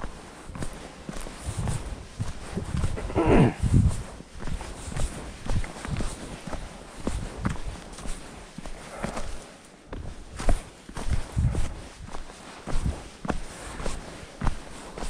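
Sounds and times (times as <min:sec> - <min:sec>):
footsteps crunching on dry leaves: 0:00.0 - 0:14.5.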